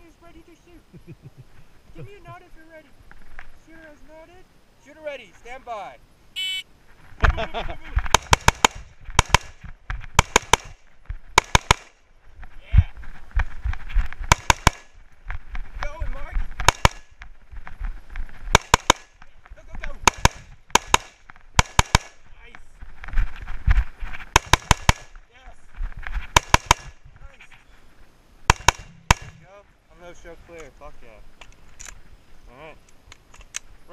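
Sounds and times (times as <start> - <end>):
rustling movement: 0.0 - 33.9
rifle gunshots: 8.1 - 9.6, 10.2 - 12.0, 14.3 - 14.9, 16.6 - 17.1, 18.5 - 19.1, 20.0 - 22.2, 24.3 - 25.1, 26.3 - 27.0, 28.5 - 29.4.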